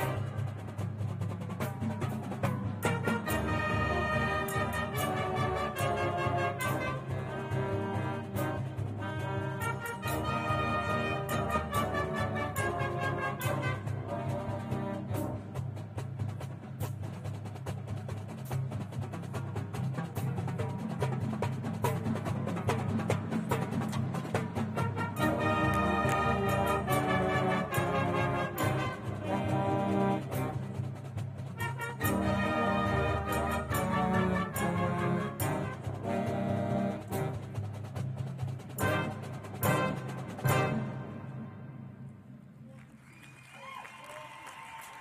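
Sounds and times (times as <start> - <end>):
marching drums: 0.0 - 41.5
marching band brass: 0.0 - 42.9.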